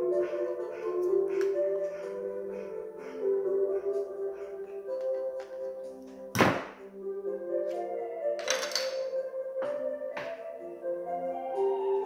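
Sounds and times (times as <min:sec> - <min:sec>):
background music melody: 0:00.0 - 0:12.0.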